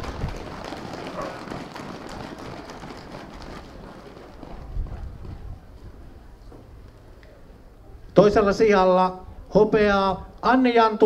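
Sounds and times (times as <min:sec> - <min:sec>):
small crowd applause: 0:00.0 - 0:05.0.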